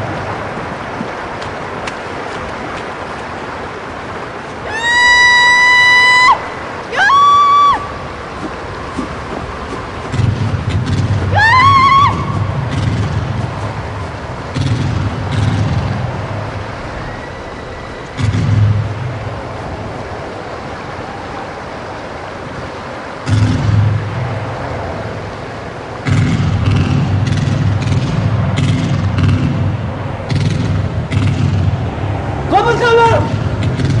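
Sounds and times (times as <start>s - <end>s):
deep rumbling drone: 9.9s - 21.5s, 23.2s - 32.5s.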